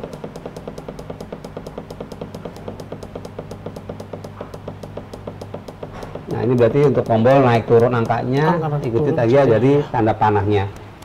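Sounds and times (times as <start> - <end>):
digital controller ticking rapidly: 0.0 - 9.2
low electrical hum: 0.0 - 11.0.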